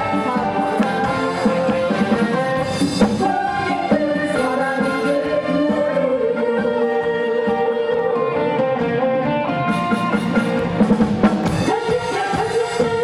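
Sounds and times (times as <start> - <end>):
drum kit: 0.0 - 6.0, 8.8 - 13.0
live band playing melody: 0.0 - 13.0.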